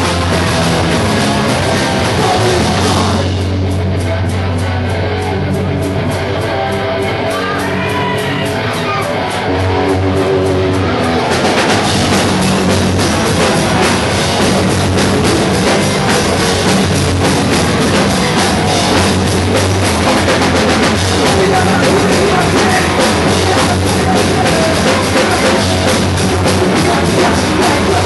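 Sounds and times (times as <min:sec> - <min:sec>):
drum kit hitting: 0:00.0 - 0:07.3, 0:09.2 - 0:28.0
live rock band playing: 0:00.0 - 0:28.0.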